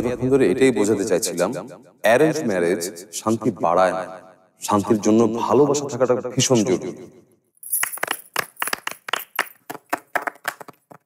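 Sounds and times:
people clapping: 0:07.6 - 0:11.0.

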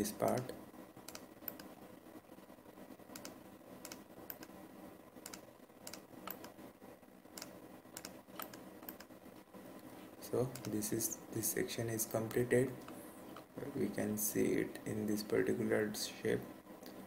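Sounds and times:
computer mouse and keys clicking: 0:00.0 - 0:01.8, 0:03.1 - 0:04.6, 0:05.2 - 0:06.6, 0:07.3 - 0:09.2, 0:09.8 - 0:10.8
faint steady hum: 0:00.0 - 0:17.0.

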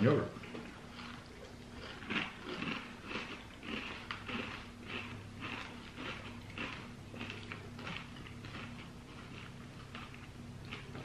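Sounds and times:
crunchy cereal being chewed: 0:00.4 - 0:11.0.

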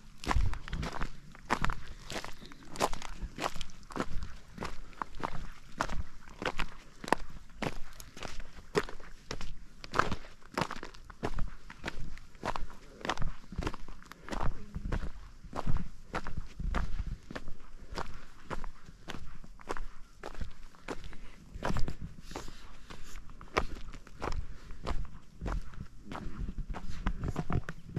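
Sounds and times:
footsteps crunching on shale: 0:00.0 - 0:27.9.

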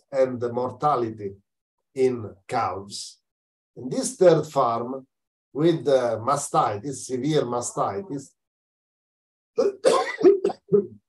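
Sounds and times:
person coughing: 0:09.6 - 0:11.0.

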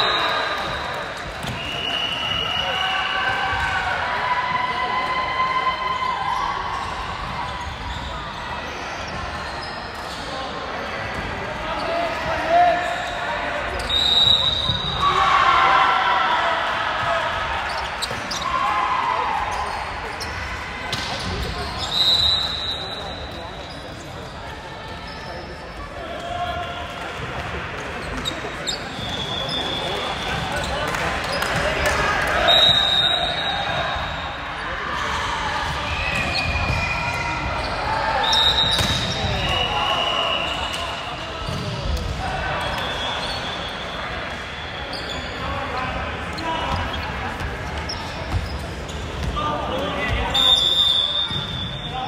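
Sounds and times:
volleyball hits: 0:38.6 - 0:39.8.

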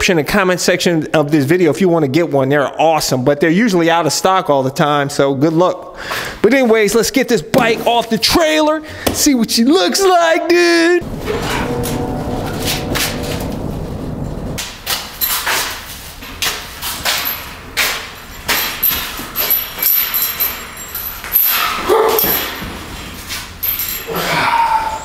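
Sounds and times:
metal clanks and rattles: 0:11.0 - 0:24.1.

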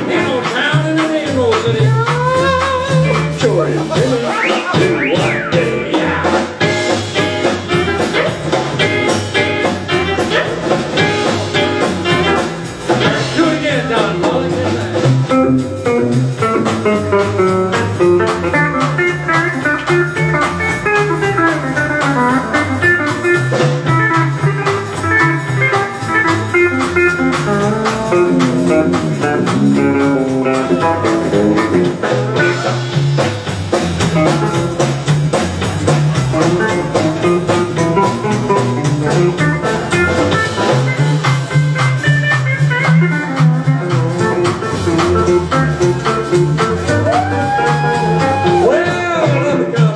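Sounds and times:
drum kit: 0:00.0 - 0:49.9
electric guitar: 0:00.0 - 0:49.9
upright double bass: 0:00.0 - 0:49.9
pedal steel guitar: 0:01.9 - 0:13.2, 0:15.2 - 0:49.4.

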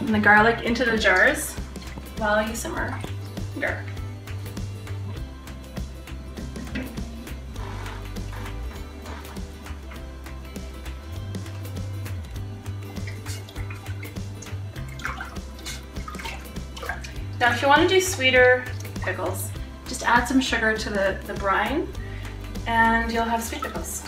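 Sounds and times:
background music with bass line: 0:00.0 - 0:24.0.

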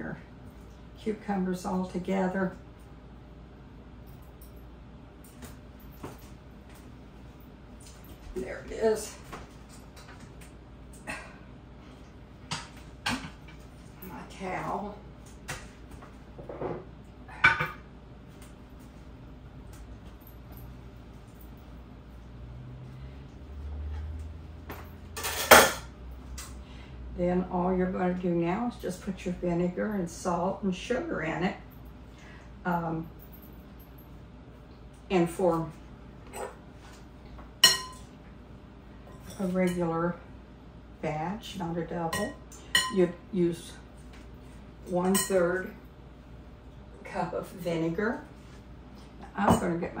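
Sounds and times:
spoon clinking glass bowl: 0:37.6 - 0:38.1.

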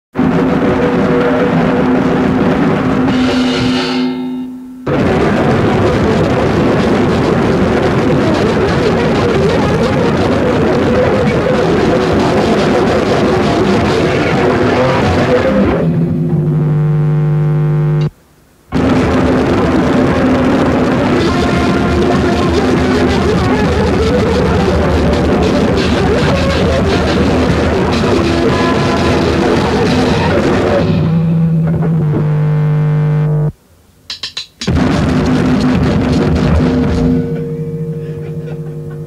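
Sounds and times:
held low note with overtones: 0:00.2 - 0:07.3, 0:09.0 - 0:18.2, 0:18.8 - 0:33.6, 0:34.7 - 0:39.0
noisy jazz-punk improvisation: 0:00.2 - 0:39.0.

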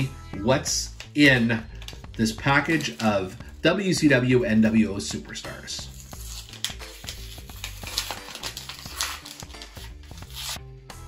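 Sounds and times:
quiet background music: 0:00.0 - 0:11.0
plastic wrapper tearing and crackling: 0:05.9 - 0:10.6.

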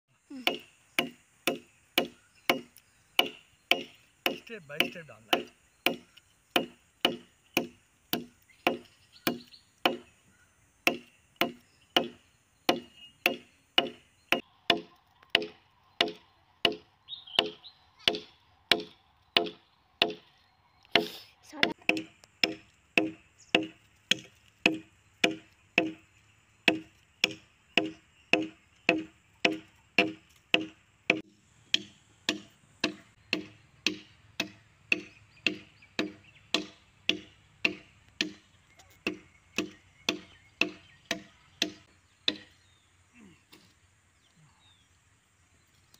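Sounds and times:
machete chopping wooden log: 0:00.3 - 0:10.1, 0:10.8 - 0:20.2, 0:20.9 - 0:42.6.

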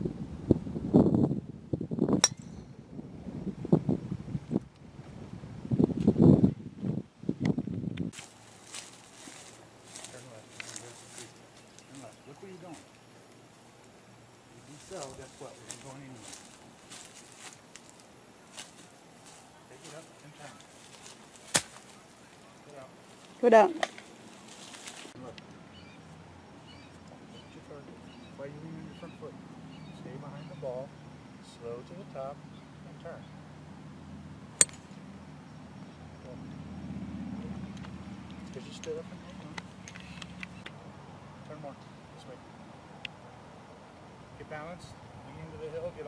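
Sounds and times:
golf club striking ball: 0:02.2 - 0:02.7, 0:34.6 - 0:35.0.

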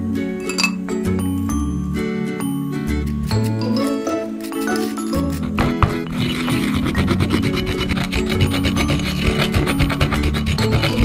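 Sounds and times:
pestle grinding tea leaves in mortar: 0:03.3 - 0:11.0.

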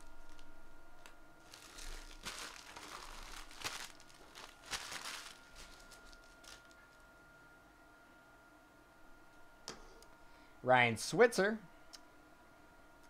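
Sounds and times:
foil wrappers crinkling: 0:00.0 - 0:07.0.

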